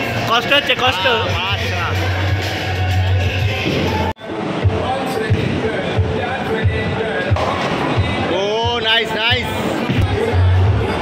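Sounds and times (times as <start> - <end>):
music with thumping beat: 3.2 - 11.0.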